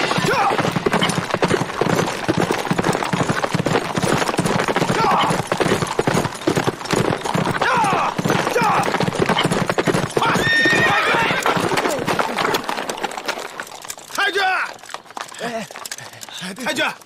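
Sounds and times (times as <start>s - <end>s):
horses whinnying: 0.0s - 16.5s
hooves clip-clopping on pavement: 0.0s - 17.0s.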